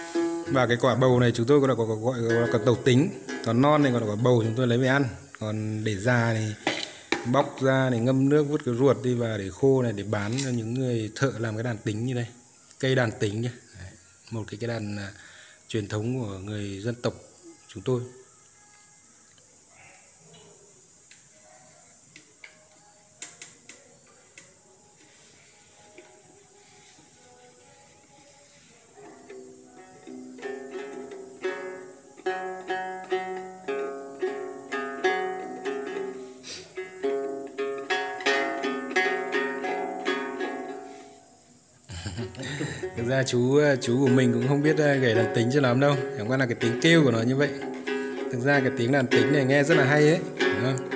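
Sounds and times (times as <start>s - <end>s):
long-necked lute plucked: 0.0s - 9.2s, 29.1s - 41.2s, 42.4s - 50.9s.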